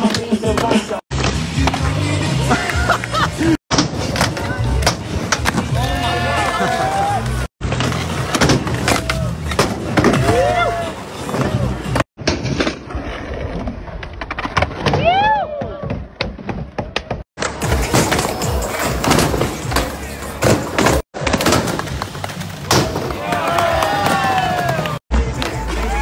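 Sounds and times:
skateboard wheels rolling on concrete: 0:00.0 - 0:26.0
music: 0:00.8 - 0:03.6, 0:17.4 - 0:21.0, 0:24.5 - 0:26.0.

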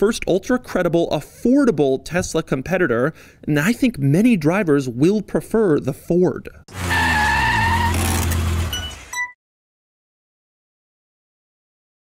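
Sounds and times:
car engine revving: 0:06.7 - 0:09.1
tyre squeal: 0:06.7 - 0:09.3.

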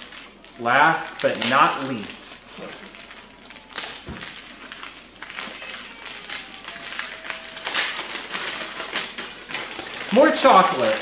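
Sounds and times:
wrapping paper tearing and crinkling: 0:00.0 - 0:11.0.

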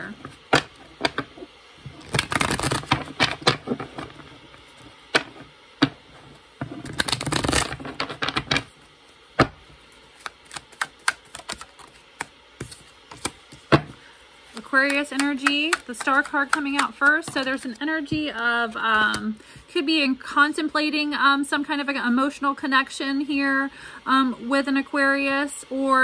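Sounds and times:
cards shuffling flutter: 0:10.0 - 0:13.7
cards clicking and tapping: 0:10.2 - 0:13.9, 0:14.6 - 0:19.3.

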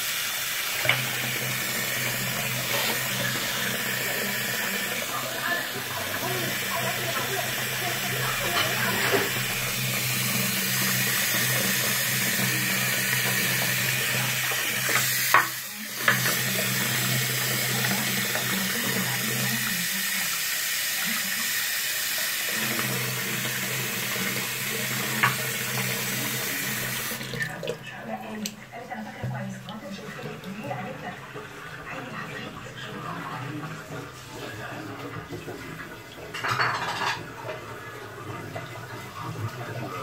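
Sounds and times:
tap water running into sink: 0:00.0 - 0:40.0.

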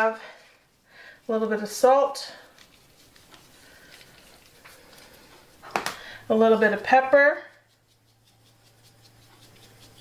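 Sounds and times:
salt grains pattering: 0:01.3 - 0:10.0.

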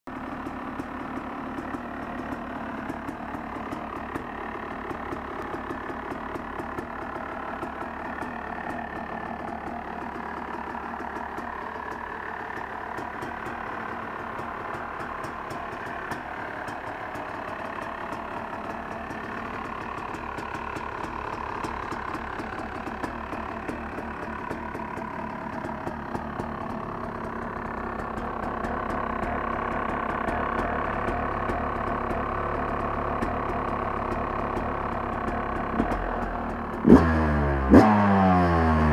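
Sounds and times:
two-stroke engine idling: 0:00.1 - 0:38.9.

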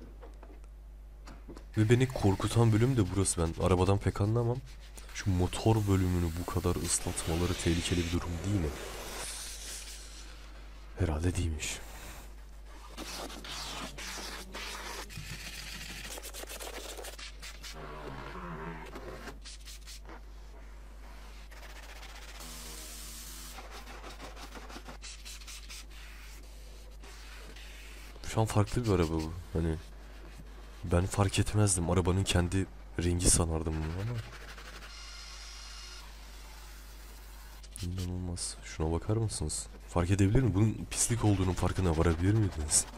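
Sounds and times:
sponge scrubbing upholstery: 0:33.5 - 0:35.1, 0:40.9 - 0:42.9.

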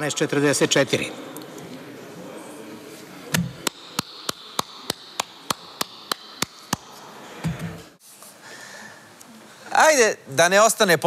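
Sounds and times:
person clapping: 0:03.7 - 0:06.9.

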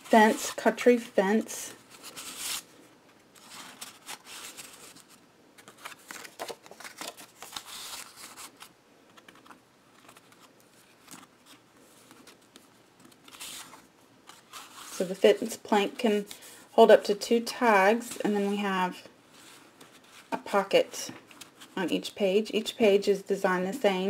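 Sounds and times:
paper rustling and sliding: 0:01.8 - 0:02.7, 0:03.4 - 0:15.5.

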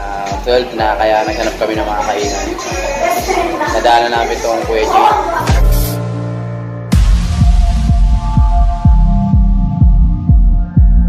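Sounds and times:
electronic music: 0:00.0 - 0:11.0
synth notes: 0:00.0 - 0:11.0
bass kick drum: 0:04.6 - 0:11.0.

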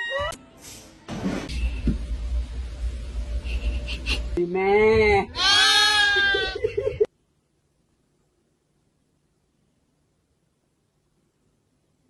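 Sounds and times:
cat yowling: 0:05.4 - 0:06.6.

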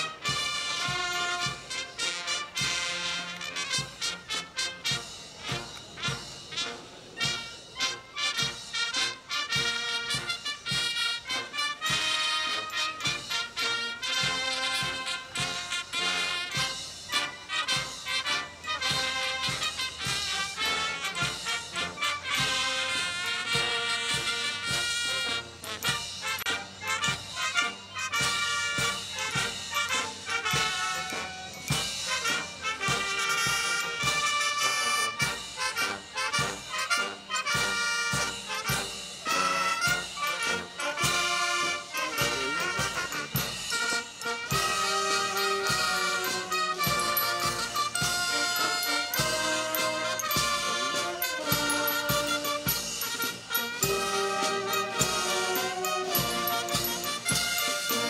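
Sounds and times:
marching brass band: 0:00.0 - 0:58.0.

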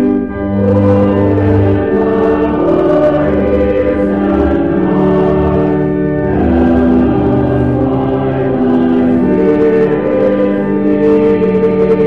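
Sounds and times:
congregation singing a hymn: 0:00.0 - 0:12.0
organ chords: 0:00.0 - 0:12.0.

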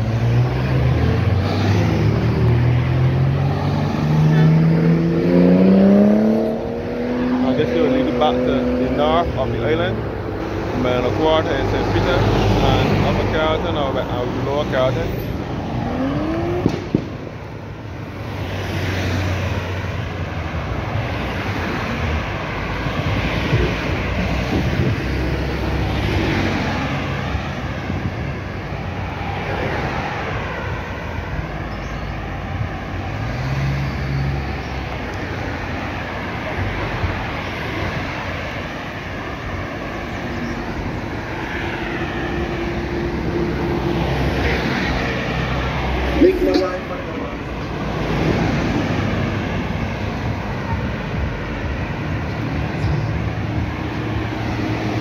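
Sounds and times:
cars passing by: 0:00.0 - 0:55.0
sharp knock: 0:16.6 - 0:17.2.

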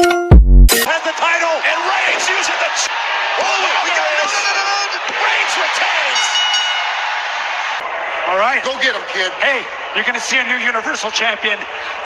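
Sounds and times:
crowd cheering: 0:00.7 - 0:12.0
ringing high tones: 0:06.1 - 0:07.0.

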